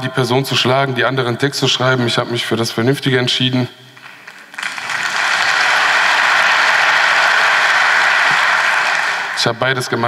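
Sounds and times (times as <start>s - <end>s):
audience applauding: 4.0s - 10.0s.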